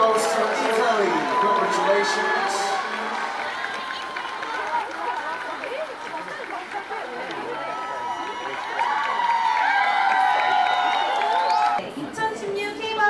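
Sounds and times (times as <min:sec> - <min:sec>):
crowd cheering and screaming: 0:00.0 - 0:11.9
crowd chattering and calling out: 0:00.0 - 0:13.0.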